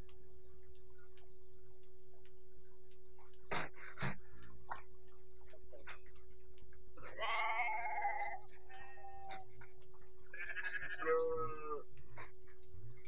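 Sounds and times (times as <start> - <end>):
goat bleating: 7.0 - 9.5, 10.3 - 11.8.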